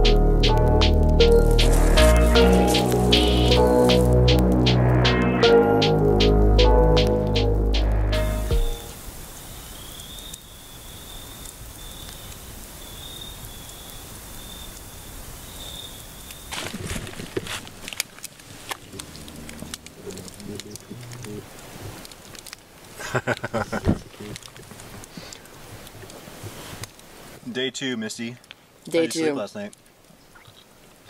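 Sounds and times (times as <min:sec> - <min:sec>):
music: 0:00.0 - 0:09.0
faint high wavering chorus: 0:00.0 - 0:09.1
sharp crackles and clicks: 0:00.0 - 0:23.5, 0:24.1 - 0:27.1
steady hiss: 0:00.0 - 0:30.2.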